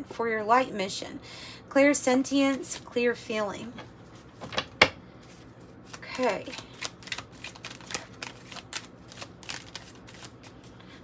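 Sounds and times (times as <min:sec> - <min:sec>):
cards being shuffled: 0:04.2 - 0:11.0.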